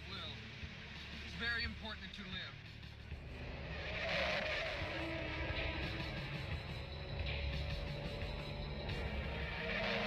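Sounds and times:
car engine rumbling: 0.0 - 10.0
noisy rush: 0.0 - 10.0.

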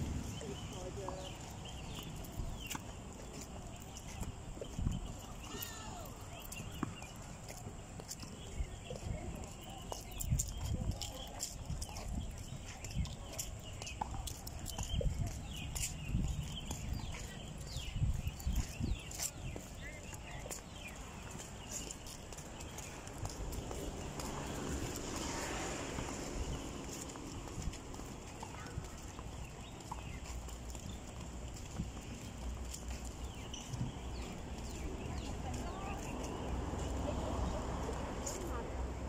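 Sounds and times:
footsteps: 0.0 - 39.0.

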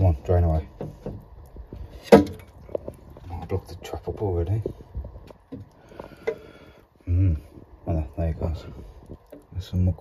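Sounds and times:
water dripping and trickling: 0.0 - 10.0.

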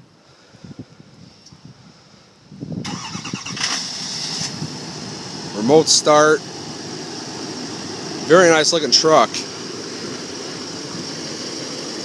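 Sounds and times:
pickup engine starting: 2.8 - 11.6.

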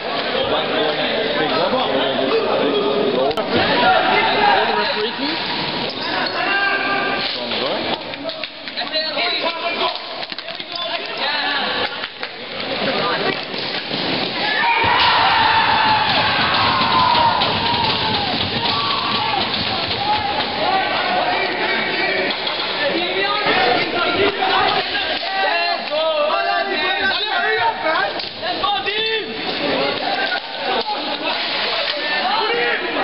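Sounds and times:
players and onlookers shouting: 14.4 - 22.4.

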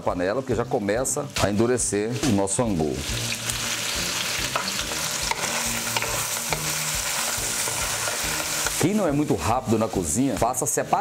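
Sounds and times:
sizzling hiss of cooking: 0.0 - 11.0.

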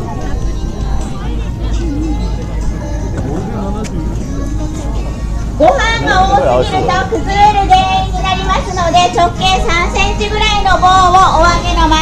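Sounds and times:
steady low rumble: 0.0 - 12.0
announcer speaking over loudspeakers: 6.0 - 7.3.

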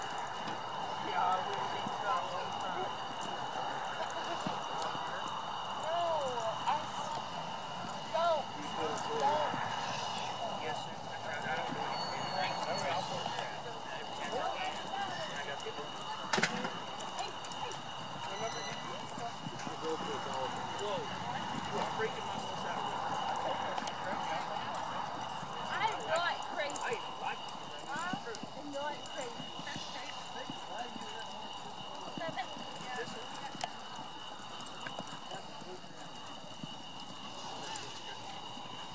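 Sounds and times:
horse hooves on dirt: 0.0 - 38.9
indistinct voices and calls: 0.0 - 38.9.

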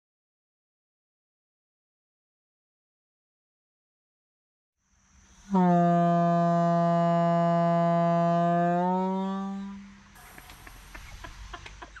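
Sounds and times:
air horn low note: 5.5 - 10.0.

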